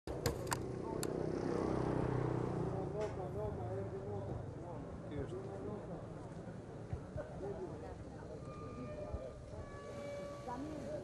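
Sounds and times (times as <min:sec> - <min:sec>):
sharp clicks: 0:00.1 - 0:01.1.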